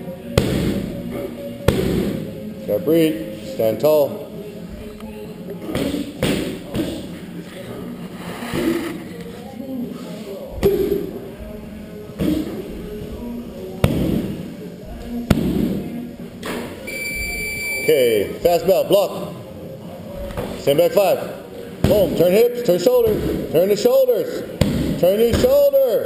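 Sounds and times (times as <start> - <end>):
strikes smacking on pads: 0.4 - 0.9, 1.7 - 2.2, 24.6 - 25.5.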